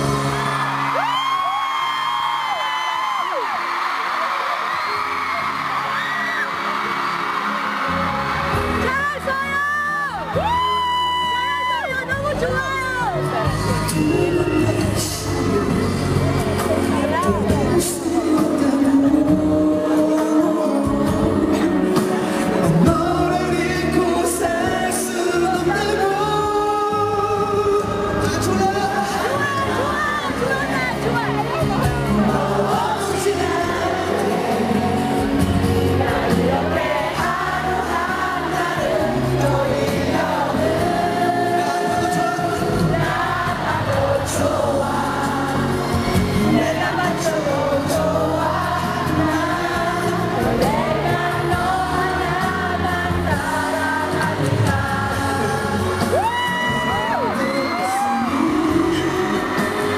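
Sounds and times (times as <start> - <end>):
audience screaming: 0.0 - 17.4, 55.4 - 59.9
live pop ballad accompaniment: 0.0 - 59.9
person singing: 13.2 - 59.9.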